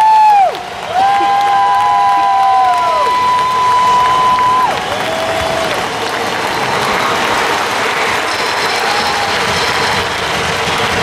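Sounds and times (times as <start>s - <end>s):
stadium crowd applauding and cheering: 0.0s - 11.0s.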